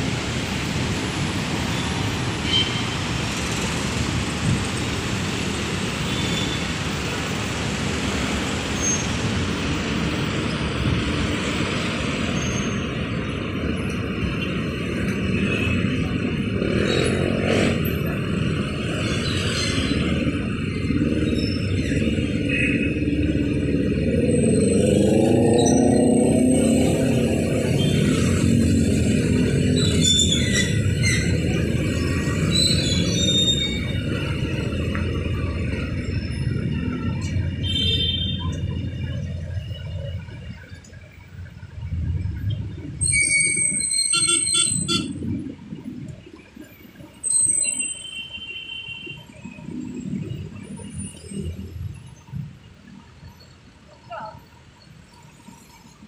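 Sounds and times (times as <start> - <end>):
heavy road traffic: 0.0 - 56.0.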